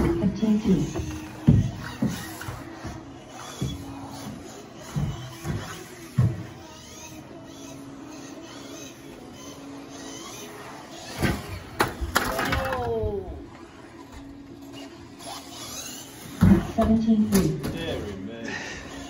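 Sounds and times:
toy car motor whine: 0.0s - 17.2s, 18.8s - 19.0s.

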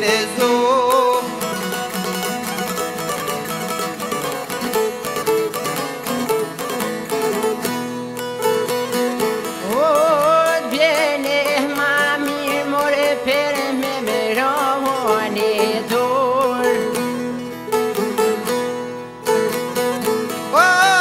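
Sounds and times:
man singing with vibrato: 0.0s - 4.4s, 9.4s - 18.4s, 20.3s - 21.0s
plucked lutes playing fast: 0.0s - 21.0s.

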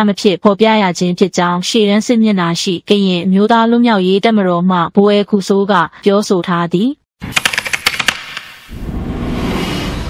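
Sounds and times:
rapid typewriter-like clicks: 7.2s - 8.6s
low rumble: 8.7s - 10.0s.

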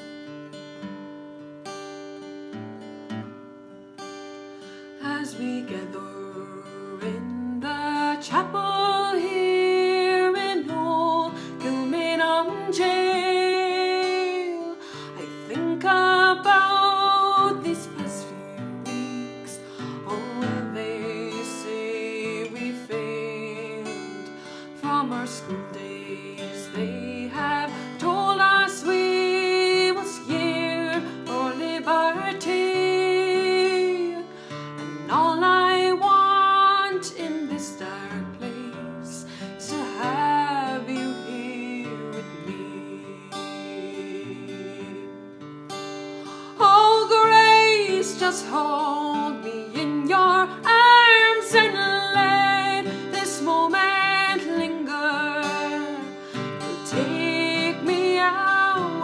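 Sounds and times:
acoustic guitar played with pick: 0.0s - 59.0s
woman singing: 4.9s - 59.0s.

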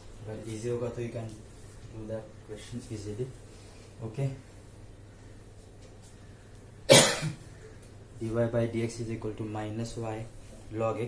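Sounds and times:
man coughing: 6.9s - 7.5s.

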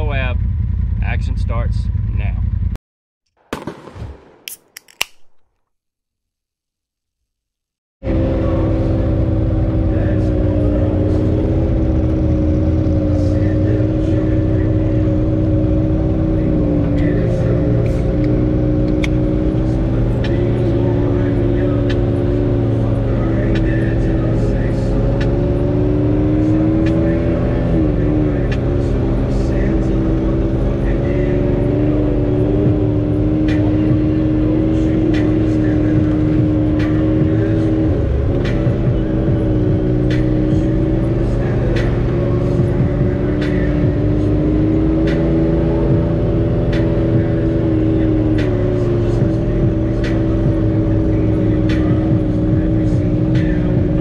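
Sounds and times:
vehicle engine running: 0.0s - 2.8s, 8.0s - 54.0s.

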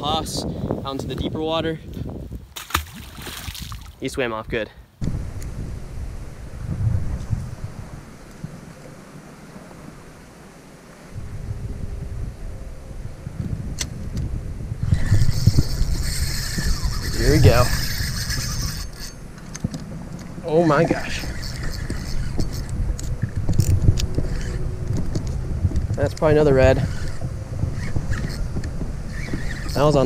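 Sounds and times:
wind gusting on microphone: 0.0s - 30.0s
fishing reel buzzing: 14.8s - 25.3s, 26.1s - 30.0s.

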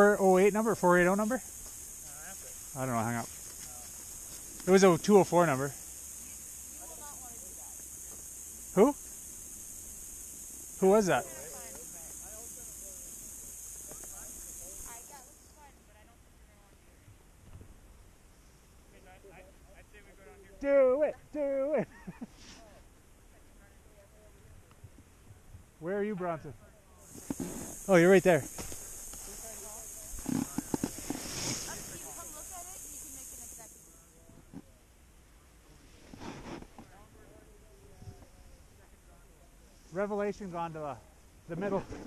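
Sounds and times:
steady high hiss: 0.0s - 42.0s
faint voices: 26.4s - 34.8s
snowboard sliding over snow: 27.2s - 32.4s.

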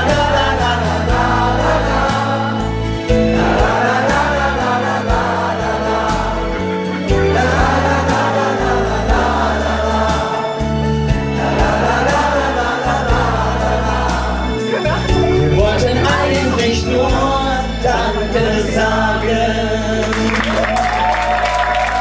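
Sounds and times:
voices singing in chorus: 0.0s - 20.7s
backing music with bass line: 0.0s - 22.0s.

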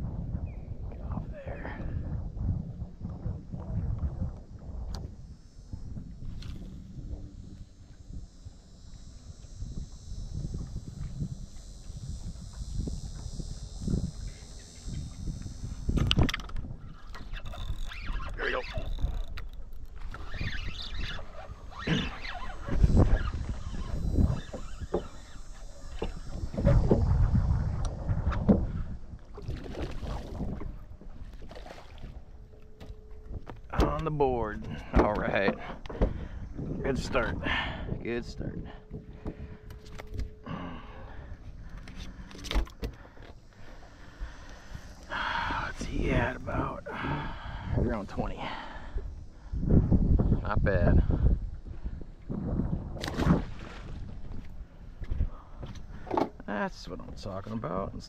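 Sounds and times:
steady high hiss: 4.7s - 28.0s, 32.5s - 34.6s, 35.2s - 51.6s
water splashing: 29.3s - 32.4s.

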